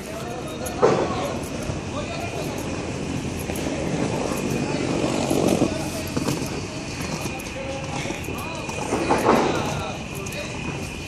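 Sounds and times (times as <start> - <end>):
indistinct voices of passers-by: 0.0 - 11.0
outdoor background noise: 0.0 - 11.0.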